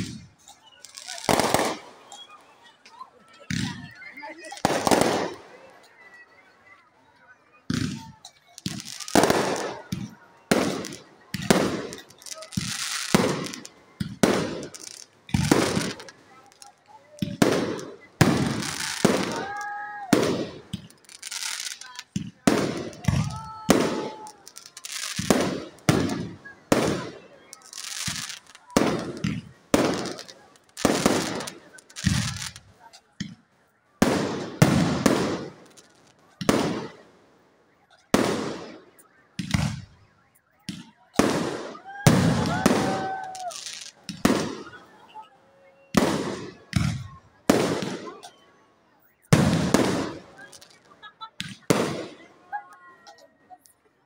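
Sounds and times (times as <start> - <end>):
firework bangs: 0.9 - 2.2, 3.5 - 5.5, 7.7 - 33.4, 34.0 - 37.0, 37.8 - 40.0, 40.7 - 45.3, 45.9 - 48.3, 49.3 - 52.3.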